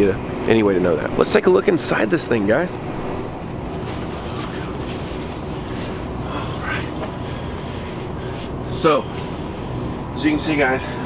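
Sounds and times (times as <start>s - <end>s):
low background rumble: 2.6s - 11.0s
faint rustle: 3.7s - 8.4s.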